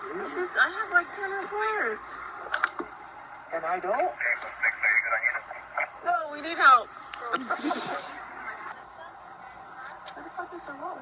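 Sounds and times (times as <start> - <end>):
tinny radio voice transmission: 4.0 - 6.1.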